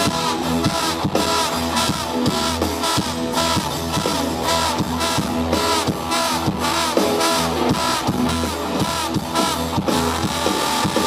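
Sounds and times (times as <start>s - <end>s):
live rock band playing: 0.0s - 11.0s
trombone soloing: 0.0s - 11.0s.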